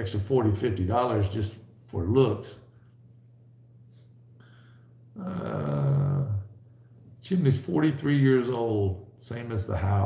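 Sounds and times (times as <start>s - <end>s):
man's drawn-out uhh: 5.2s - 6.5s.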